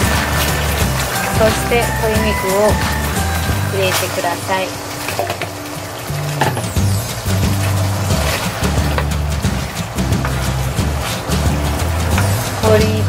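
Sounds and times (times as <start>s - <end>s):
background music with bass line: 0.0s - 4.0s, 5.9s - 13.0s
wooden spatula scraping a wok: 0.0s - 13.0s.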